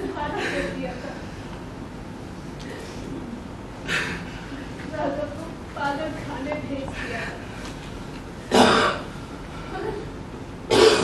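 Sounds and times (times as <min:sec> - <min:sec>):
person coughing harshly: 0:08.5 - 0:09.1, 0:10.7 - 0:11.0.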